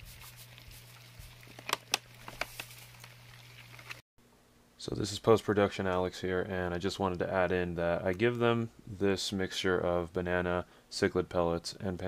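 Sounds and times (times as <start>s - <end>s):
plastic packet crinkling: 0.2s - 4.0s.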